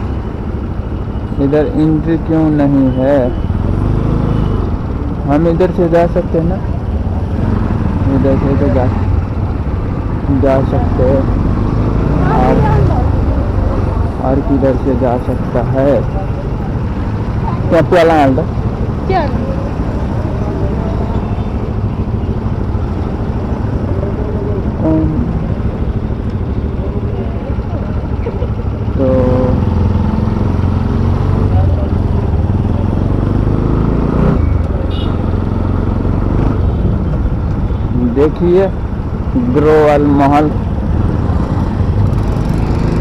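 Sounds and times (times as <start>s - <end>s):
motorbike engine rumbling: 0.0s - 43.0s.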